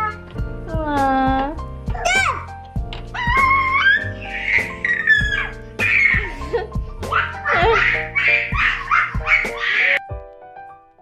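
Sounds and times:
background music: 0:00.0 - 0:11.0
toddler giggling: 0:03.8 - 0:10.0.

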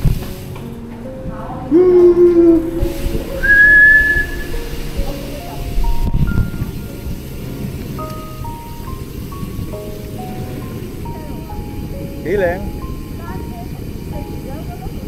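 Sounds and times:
road rumble: 0:00.0 - 0:15.0
wind: 0:00.0 - 0:15.0
whistling-like melody: 0:01.7 - 0:07.3.

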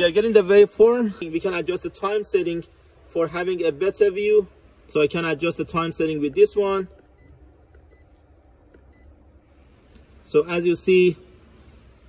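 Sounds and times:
low steady hum: 0:00.0 - 0:12.0
short high key beeps: 0:07.1 - 0:08.1.

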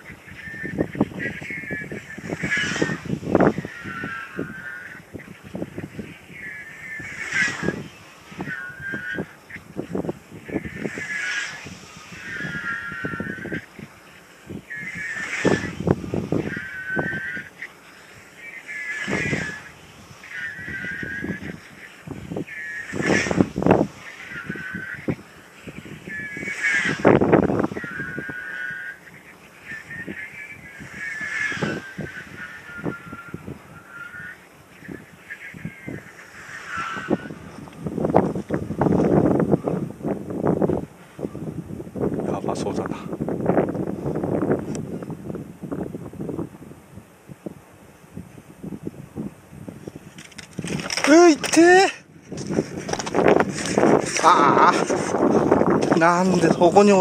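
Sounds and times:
glider whooshing past with whistle: 0:07.0 - 0:08.4, 0:10.8 - 0:12.9, 0:14.8 - 0:15.9, 0:26.1 - 0:27.2, 0:30.9 - 0:33.3, 0:36.3 - 0:37.5.

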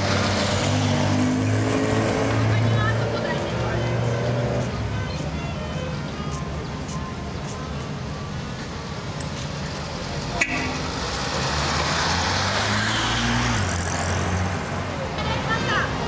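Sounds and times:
crowd chatter: 0:02.2 - 0:11.1, 0:13.8 - 0:16.0
car engine accelerating past: 0:10.9 - 0:14.6.

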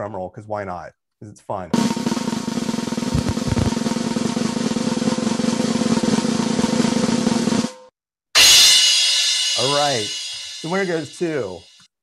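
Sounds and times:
snare drum roll: 0:01.8 - 0:07.9
low thumps: 0:03.1 - 0:03.8.

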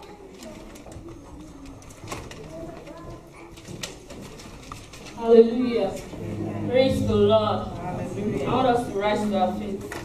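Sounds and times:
low voices: 0:05.4 - 0:10.0.

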